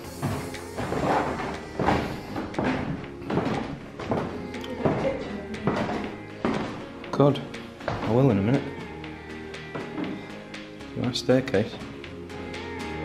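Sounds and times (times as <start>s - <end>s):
footsteps on wooden staircase: 0.0s - 8.8s, 9.6s - 10.3s
background music: 0.0s - 13.0s.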